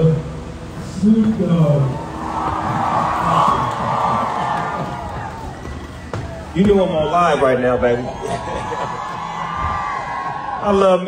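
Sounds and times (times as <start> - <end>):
crowd cheering: 1.6 - 11.0.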